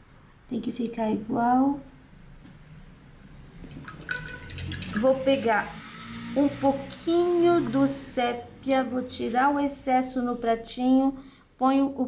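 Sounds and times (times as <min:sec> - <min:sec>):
paintbrush knocking against jar: 0:03.7 - 0:05.6.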